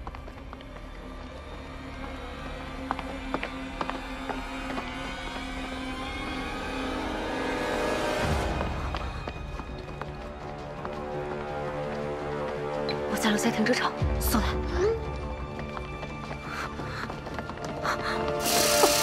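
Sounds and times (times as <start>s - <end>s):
tense background music: 0.0s - 19.0s.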